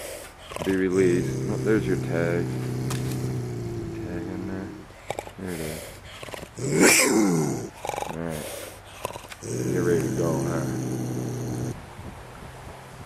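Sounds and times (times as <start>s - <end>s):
bobcat growling and snarling: 0.0s - 11.8s
bobcat hissing: 0.0s - 11.8s.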